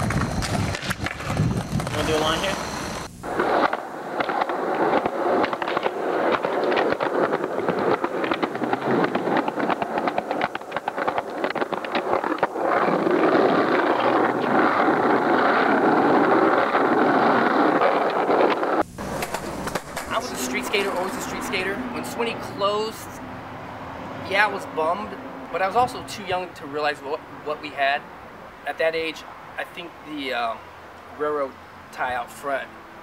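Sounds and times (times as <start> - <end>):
skateboard wheels clacking: 0.0 - 2.6, 3.4 - 21.7
skateboard rolling on rough pavement: 0.0 - 23.0.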